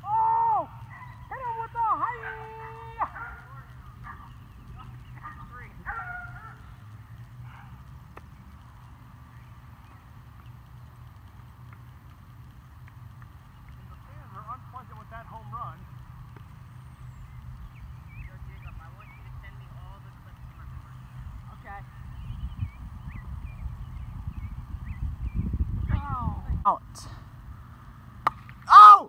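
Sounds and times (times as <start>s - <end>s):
faint distant voices: 0.0s - 24.2s
wind rumble on microphone: 0.0s - 27.7s.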